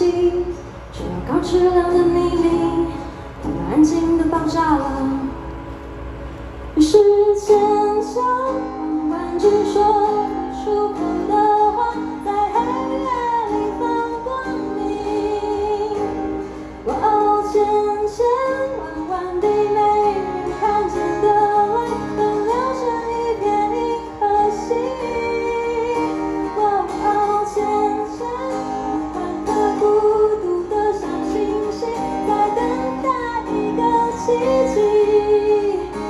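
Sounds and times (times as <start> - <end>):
woman singing: 0.0 - 5.4, 6.8 - 36.0
acoustic guitar strumming: 0.0 - 36.0.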